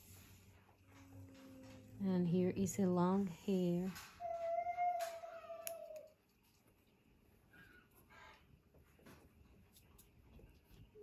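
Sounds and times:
small scissors snipping: 0:05.6 - 0:06.2.

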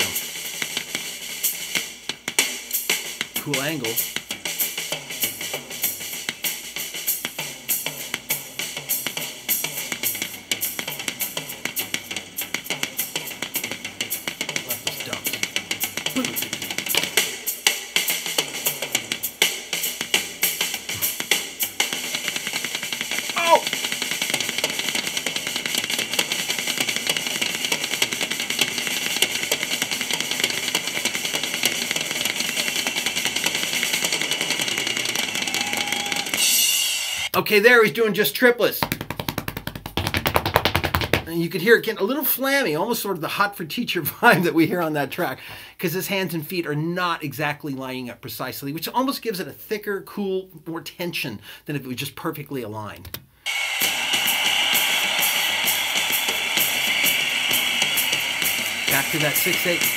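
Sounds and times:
rock drum kit solo: 0:00.0 - 0:37.4, 0:53.5 - 0:59.9
cymbals and hi-hat: 0:00.0 - 0:38.0, 0:53.5 - 0:59.9.

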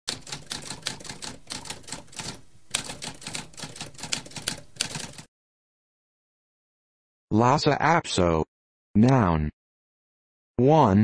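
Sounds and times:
typewriter keys clacking: 0:00.1 - 0:05.3.

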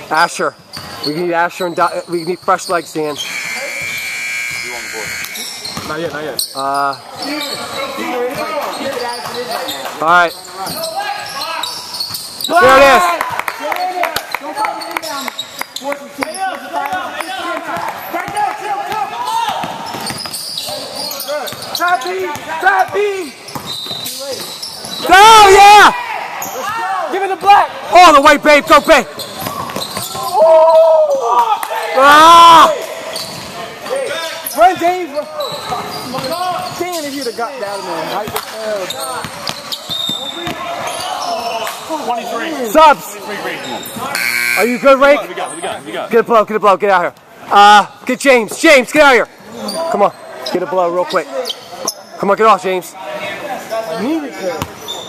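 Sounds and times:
basketball bouncing on wooden floor: 0:05.7 - 0:06.0, 0:23.5 - 0:24.0.

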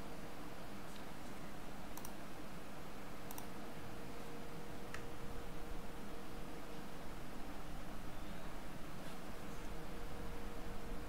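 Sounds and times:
microphone room hiss: 0:00.0 - 0:11.0
computer mouse clicks: 0:00.9 - 0:02.2, 0:03.3 - 0:03.5.

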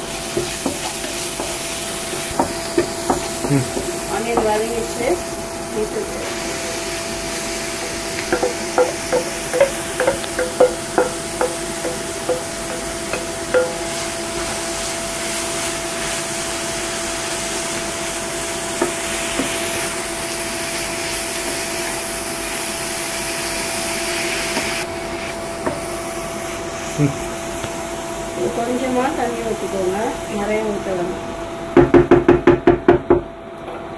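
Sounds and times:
beetroot sizzling in a pan: 0:00.0 - 0:30.9
induction cooktop hum: 0:00.0 - 0:33.9
spatula tapping steel bowl: 0:00.4 - 0:04.6, 0:07.8 - 0:14.1.

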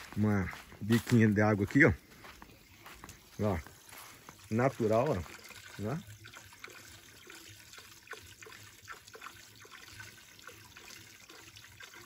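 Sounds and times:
water trickling into pool: 0:00.0 - 0:12.0
little splashes: 0:03.1 - 0:12.0.

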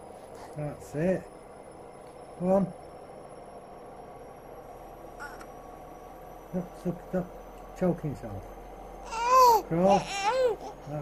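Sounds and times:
faint hum and high whine: 0:00.0 - 0:11.0
baby squeaking: 0:09.1 - 0:10.8.

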